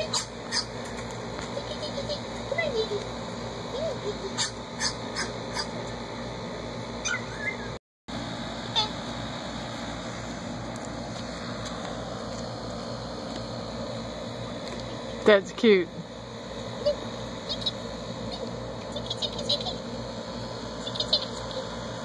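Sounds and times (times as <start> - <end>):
high-pitched animal squeaks: 7.0 - 7.8, 16.9 - 19.8.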